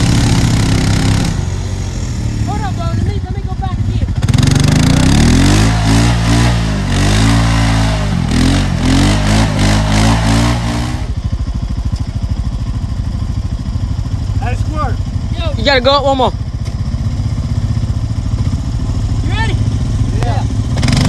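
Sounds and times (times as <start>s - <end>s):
atv engine revving: 0.0s - 21.0s.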